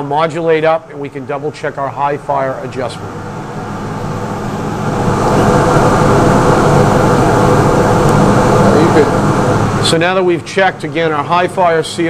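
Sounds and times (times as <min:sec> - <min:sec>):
gas boiler burner rushing: 0:00.0 - 0:12.0.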